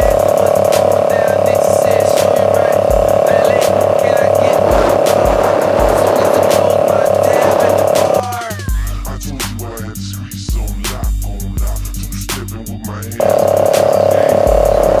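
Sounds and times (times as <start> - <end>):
held droning tone: 0.0 - 8.3, 13.2 - 15.0
hip hop beat: 0.0 - 15.0
deep kick drum thumps: 2.9 - 3.2, 4.6 - 8.8.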